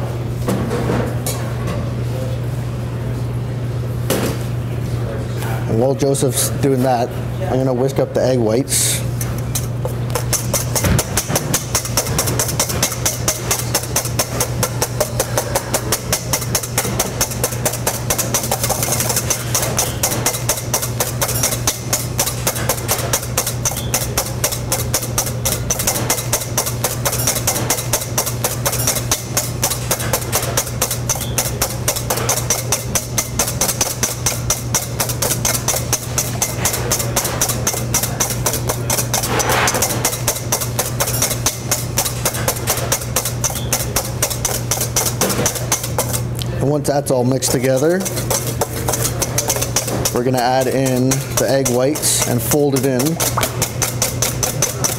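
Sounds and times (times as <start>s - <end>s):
whisk clicking against metal bowl: 9.5s - 46.4s, 47.1s - 54.9s.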